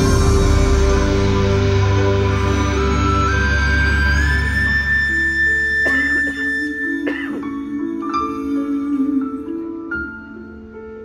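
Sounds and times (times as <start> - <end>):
live symphonic concert music: 0.0 - 11.0.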